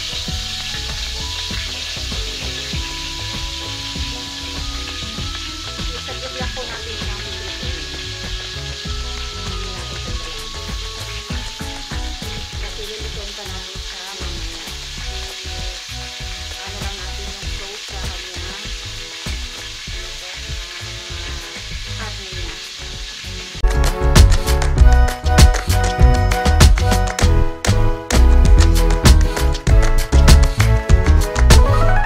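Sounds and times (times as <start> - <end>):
beef sizzling in a wok: 0.0 - 32.0.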